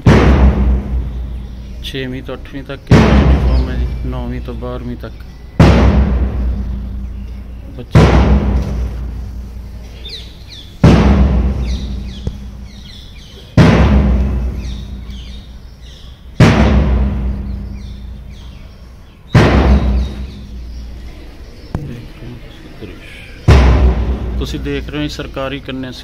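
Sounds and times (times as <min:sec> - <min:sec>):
big drum strokes: 0:00.0 - 0:02.0, 0:02.9 - 0:04.1, 0:05.6 - 0:15.7, 0:16.4 - 0:21.0, 0:23.4 - 0:25.2
birds chirping faintly: 0:00.0 - 0:26.0.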